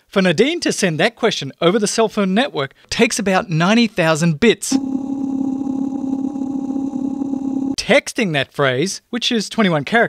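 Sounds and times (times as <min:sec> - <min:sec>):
electronic buzz with rattle: 0:04.8 - 0:07.8.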